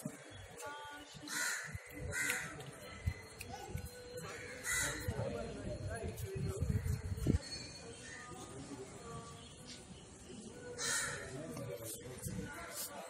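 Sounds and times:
murmur of distant voices: 0.0s - 13.0s.

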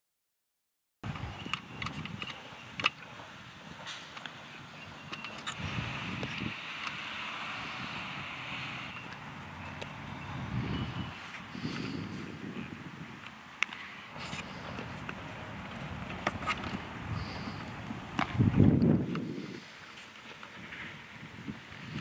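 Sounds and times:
distant traffic hum: 1.0s - 22.0s.

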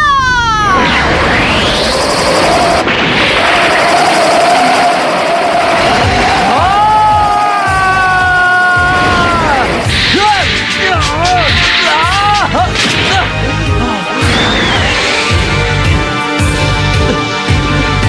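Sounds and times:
rush of wind and blast: 0.0s - 16.2s
steady whistling tone: 1.0s - 6.6s, 14.2s - 15.4s.

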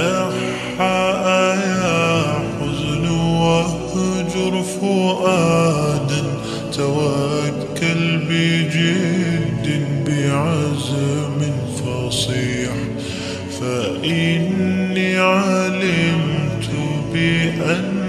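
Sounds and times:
voice chanting long notes: 0.0s - 18.0s.

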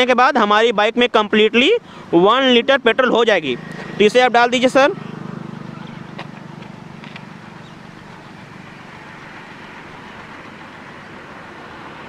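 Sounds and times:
low engine hum: 1.6s - 12.0s.

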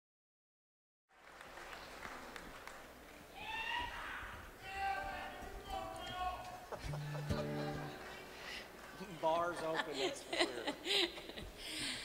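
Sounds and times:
crowd murmur: 6.6s - 12.0s.

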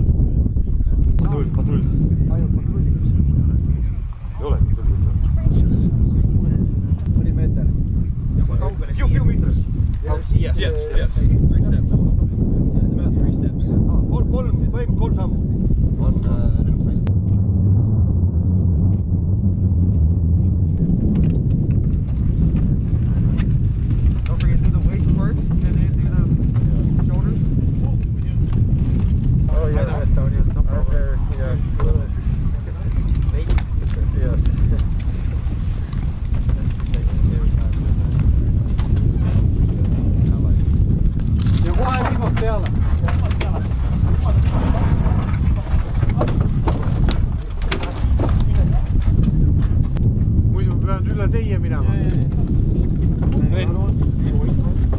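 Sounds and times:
wind buffeting microphone: 0.0s - 54.9s
voices: 0.3s - 19.2s, 24.2s - 28.7s, 29.4s - 40.8s, 41.5s - 49.5s.

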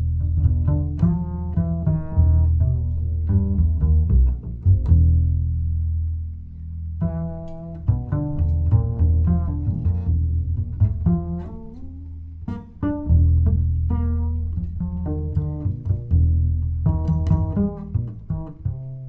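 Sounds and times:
double bass plucked notes: 0.0s - 19.0s.

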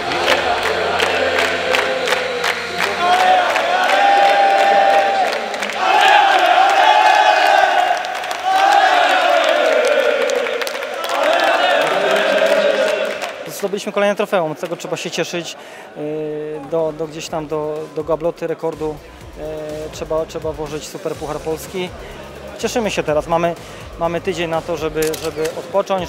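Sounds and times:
men chanting in unison: 0.0s - 13.4s
rhythmic hand-clapping: 0.0s - 13.8s.

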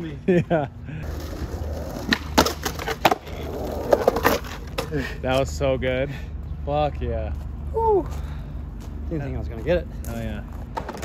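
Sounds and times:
skateboard wheels rolling on concrete: 0.3s - 5.8s, 7.1s - 11.0s
skateboard clacking on ground: 1.2s - 5.0s, 10.5s - 11.0s.

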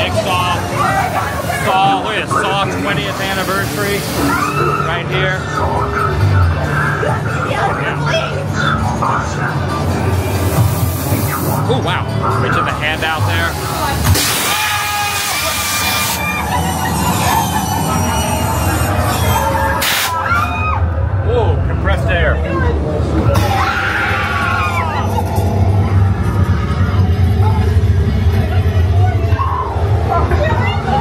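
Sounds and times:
people screaming and shouting: 0.0s - 10.6s, 13.0s - 31.0s
low pulsing music: 0.0s - 14.2s, 16.2s - 31.0s.

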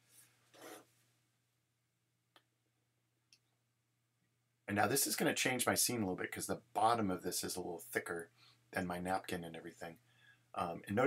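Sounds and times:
faint rubbing noises: 0.0s - 1.1s.

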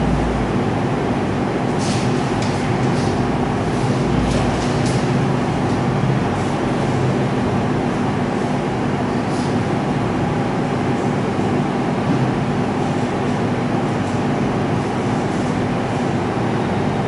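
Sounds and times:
low hum: 0.0s - 1.7s
steady rumbling noise: 0.0s - 17.0s.

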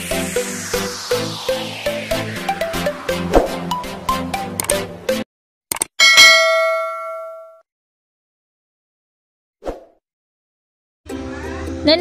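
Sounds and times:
electronic dance music: 0.0s - 5.3s
bell-like ding: 6.0s - 7.6s.

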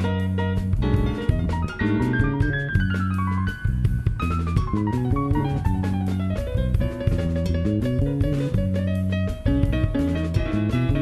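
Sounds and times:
drum kit: 0.0s - 11.0s
electric bass guitar: 0.0s - 11.0s
grand piano: 0.0s - 11.0s.

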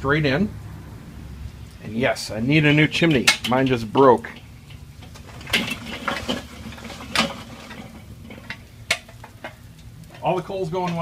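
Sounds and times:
charcoal clattering into grill: 1.8s - 11.0s
metal scraping and knocking: 2.6s - 11.0s.

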